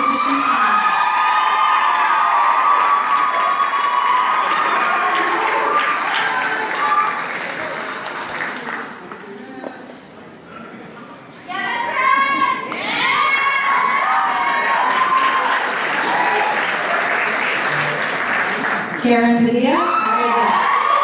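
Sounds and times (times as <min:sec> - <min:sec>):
audience applauding and cheering: 0:00.0 - 0:09.5, 0:12.6 - 0:19.1, 0:19.7 - 0:21.0.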